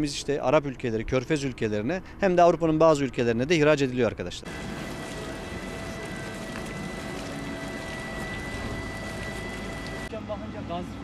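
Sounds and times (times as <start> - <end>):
quarry machinery running: 4.4 - 11.0
faint high whine: 4.5 - 11.0.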